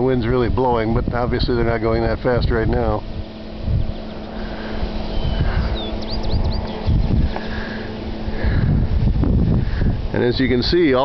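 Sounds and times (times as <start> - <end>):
faint steady hum: 0.0 - 11.0
wind noise on microphone: 0.0 - 11.0
wind turbine blades hissing: 0.0 - 11.0.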